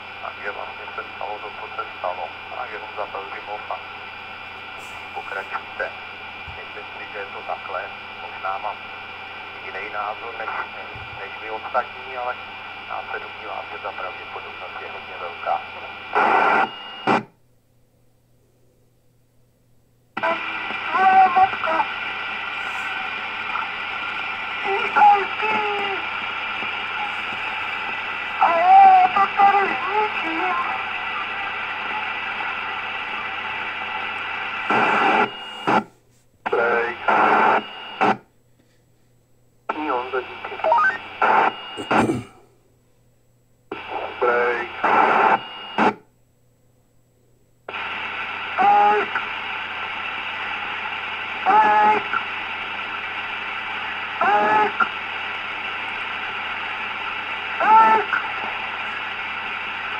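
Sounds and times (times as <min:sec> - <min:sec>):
faint broken radio speech: 0:00.0 - 0:17.2, 0:20.2 - 0:38.3, 0:39.7 - 0:42.4, 0:43.7 - 0:46.0, 0:47.7 - 0:59.9
radio static hiss: 0:00.0 - 0:17.4, 0:20.2 - 0:38.3, 0:39.6 - 0:42.4, 0:43.7 - 0:46.0, 0:47.7 - 0:59.9
steady low hum: 0:00.0 - 0:59.9.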